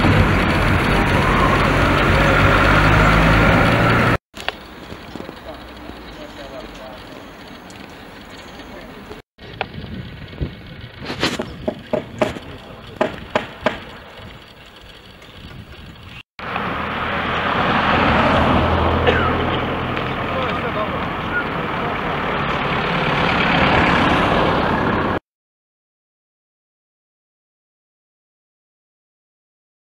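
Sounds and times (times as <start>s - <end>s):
construction knocks: 11.6s - 14.3s
car driving past: 16.4s - 25.2s.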